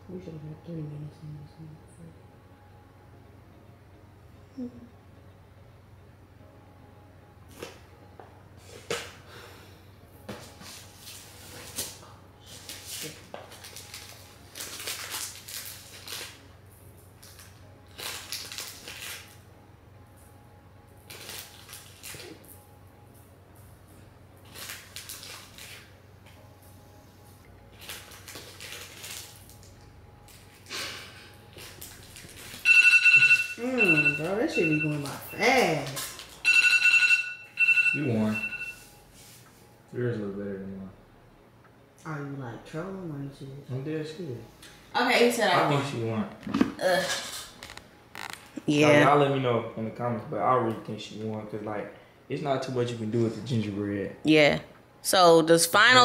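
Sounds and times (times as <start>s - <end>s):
low steady hum: 0.0s - 56.0s
plastic bags rustling: 10.5s - 16.4s, 17.2s - 19.4s, 21.1s - 22.4s, 24.4s - 25.9s, 27.7s - 29.7s, 31.5s - 32.6s
timer alarm ringing and beeping: 32.6s - 35.8s, 36.4s - 38.9s.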